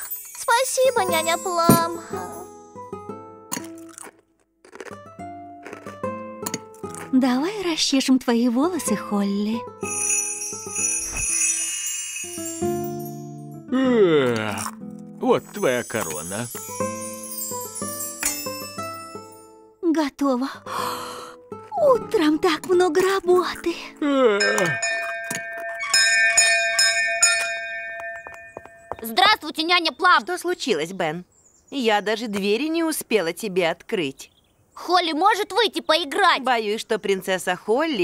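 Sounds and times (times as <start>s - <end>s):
tinkling magic chime: 0.0s - 2.5s, 9.8s - 13.5s, 15.4s - 19.6s, 24.4s - 29.2s
light background music: 0.2s - 4.1s, 4.9s - 24.8s
doorbell ringing: 9.8s - 13.3s, 24.4s - 29.2s
person yawning: 13.7s - 14.6s, 24.0s - 24.4s.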